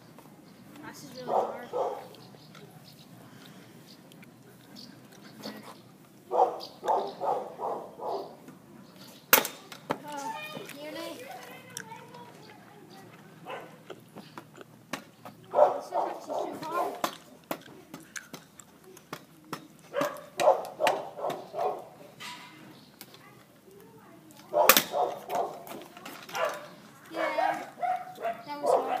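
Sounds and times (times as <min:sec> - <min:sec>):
dog barking: 0:01.3 - 0:02.1, 0:06.3 - 0:08.4, 0:13.4 - 0:13.8, 0:15.5 - 0:17.0, 0:19.9 - 0:21.9, 0:24.5 - 0:25.7, 0:26.3 - 0:29.0
scooter wheels clicking on tarmac: 0:09.7 - 0:21.8, 0:23.0 - 0:29.0.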